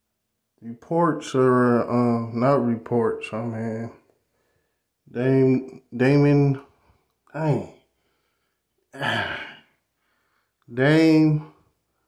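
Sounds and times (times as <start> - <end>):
man sighing: 8.9 - 10.2.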